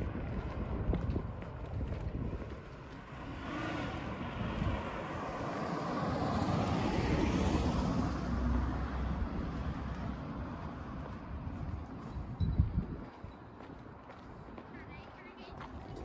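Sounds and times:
car passing: 0.0s - 12.2s.

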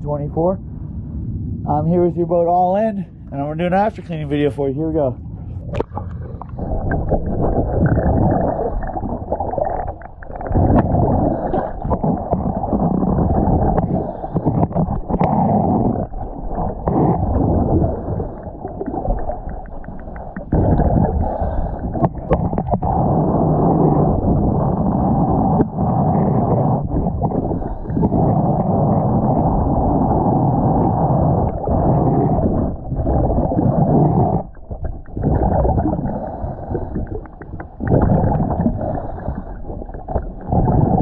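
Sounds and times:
underwater breath bubbles: 5.4s - 41.0s.

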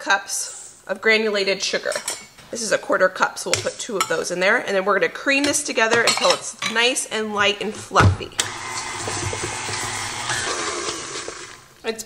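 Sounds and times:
stand mixer motor whirring: 8.4s - 11.7s.

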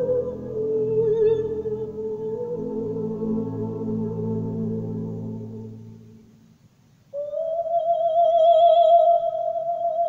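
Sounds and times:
soft orchestral chord: 0.0s - 6.5s.

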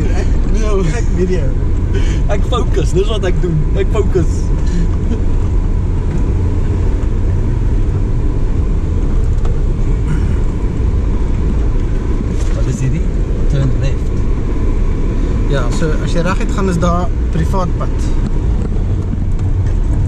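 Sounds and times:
engine and tyres rumbling: 0.0s - 20.0s.

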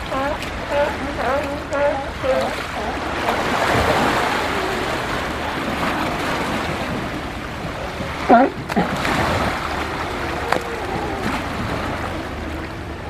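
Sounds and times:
surf splashing around rock: 0.0s - 13.0s.

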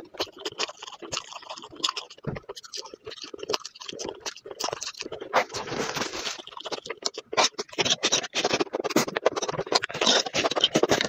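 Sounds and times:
slurping mushrooms: 0.0s - 11.0s
smacking and sucking clicks: 0.1s - 11.0s.

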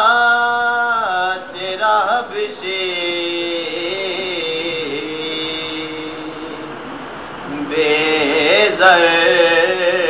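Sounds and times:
man singing unaccompanied: 0.0s - 10.0s.

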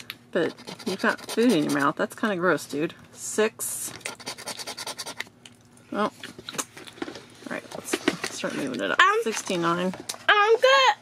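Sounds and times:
coin scratching lottery ticket: 0.5s - 1.9s, 4.1s - 5.2s.

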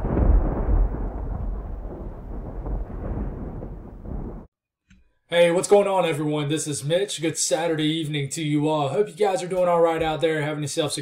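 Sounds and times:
rolling thunder rumble: 0.0s - 4.5s.

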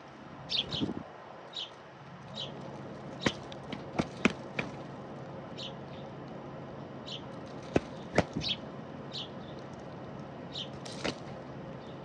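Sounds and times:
doves pecking at seed: 1.5s - 5.5s, 7.1s - 12.0s.

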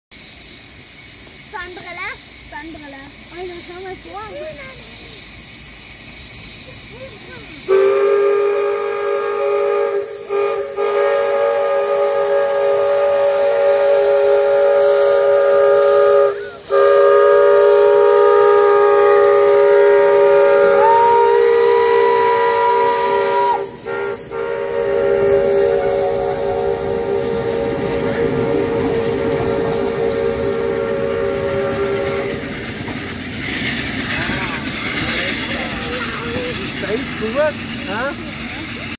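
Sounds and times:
steam hissing: 0.1s - 38.9s
locomotive rumbling: 0.2s - 38.9s
steam whistle blast: 7.6s - 32.6s.

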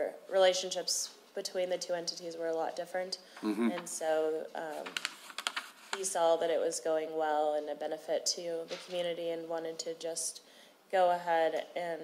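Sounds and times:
typing on laptop keyboard: 4.8s - 5.6s.

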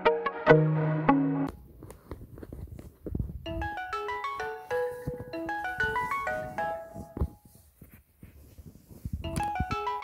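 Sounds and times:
phone alarm melody: 3.5s - 7.3s, 9.2s - 10.0s.

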